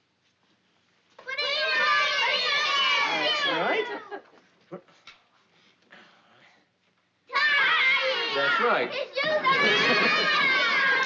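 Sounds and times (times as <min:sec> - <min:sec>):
children squealing and laughing: 0:01.4 - 0:04.3, 0:07.3 - 0:11.0.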